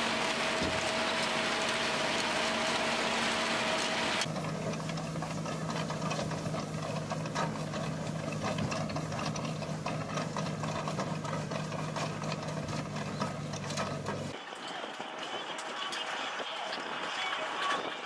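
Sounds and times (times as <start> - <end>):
tractor engine running: 0.0 - 14.8
implement rattling and clatter: 4.1 - 14.4.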